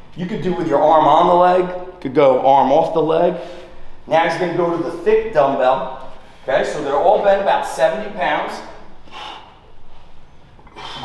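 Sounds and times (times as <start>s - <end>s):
man breathing: 3.3s - 4.1s, 6.0s - 6.6s, 8.6s - 11.0s
man's sharp breath through nose: 9.0s - 11.0s.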